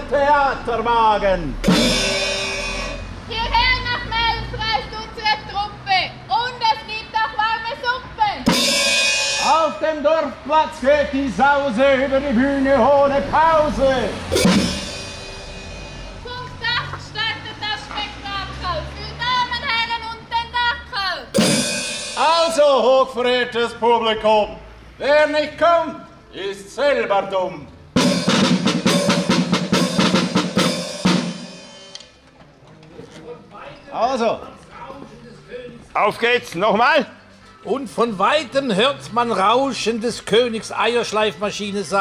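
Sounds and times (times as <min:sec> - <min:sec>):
marching drum rapid strokes: 0:01.6 - 0:03.1, 0:08.4 - 0:09.8, 0:14.3 - 0:16.5, 0:21.4 - 0:22.6, 0:28.0 - 0:32.1
cymbal crash: 0:01.6 - 0:03.2, 0:08.5 - 0:09.8, 0:14.2 - 0:16.6, 0:21.4 - 0:22.5, 0:28.0 - 0:32.0.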